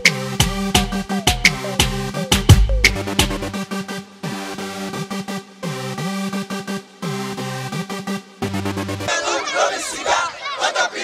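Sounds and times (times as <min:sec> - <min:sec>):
crowd shouting: 0:09.1 - 0:11.0.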